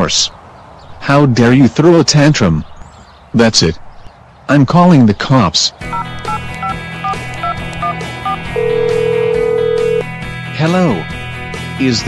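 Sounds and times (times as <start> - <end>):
background music: 5.8 - 12.0
phone keypad beeps: 5.9 - 10.0
phone ringing tone: 5.9 - 10.1.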